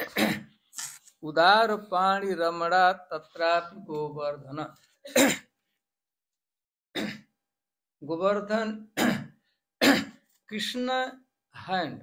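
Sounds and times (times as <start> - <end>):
man clearing his throat: 0.0 - 0.6, 5.1 - 5.5, 7.0 - 7.3, 9.0 - 10.2.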